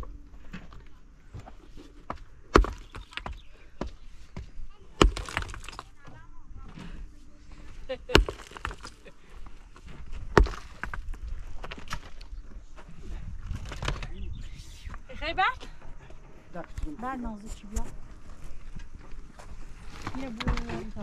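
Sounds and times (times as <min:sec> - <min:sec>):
loose stones clinking and scraping: 0:00.5 - 0:03.5, 0:04.3 - 0:06.2, 0:07.6 - 0:12.4
mattock striking stones: 0:02.0 - 0:06.2, 0:08.0 - 0:09.2, 0:09.8 - 0:12.4.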